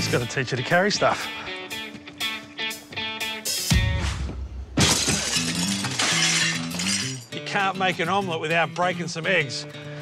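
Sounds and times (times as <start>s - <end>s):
window glass shattering: 4.8s - 7.4s.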